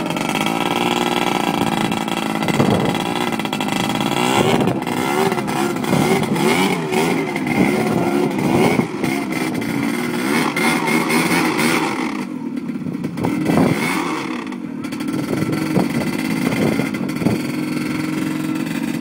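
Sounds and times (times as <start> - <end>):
quad bike engine revving: 0.0 - 19.0.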